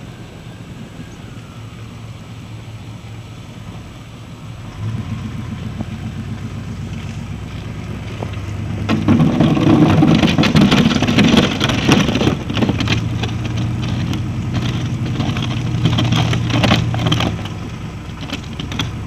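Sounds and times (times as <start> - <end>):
pickup truck engine running: 0.0 - 19.0
plow blade scraping snow: 0.0 - 19.0.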